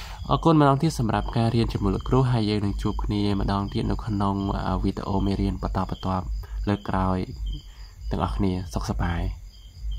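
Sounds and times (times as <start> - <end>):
man speaking: 0.0 - 9.4.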